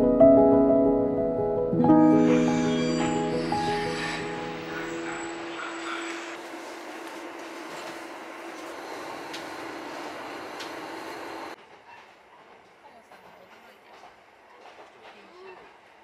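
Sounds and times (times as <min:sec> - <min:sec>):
background music: 0:00.0 - 0:05.5
railcar engine hum: 0:02.0 - 0:16.0.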